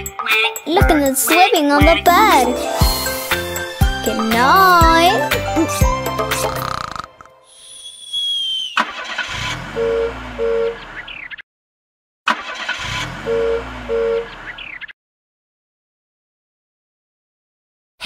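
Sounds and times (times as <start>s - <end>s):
children's song: 0.0s - 5.9s.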